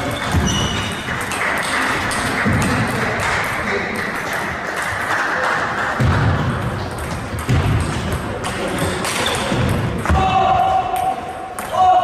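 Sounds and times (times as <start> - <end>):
murmur of sports hall: 0.0 - 12.0.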